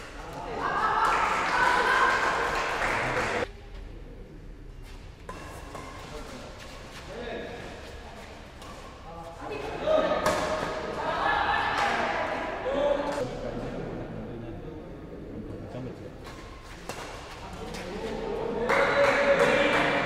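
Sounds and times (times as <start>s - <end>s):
people shouting: 10.9s - 13.0s.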